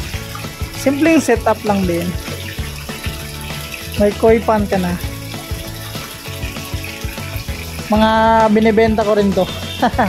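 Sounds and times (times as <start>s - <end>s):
background music with steady beat: 0.0s - 10.0s
water pouring into pond: 0.0s - 10.0s.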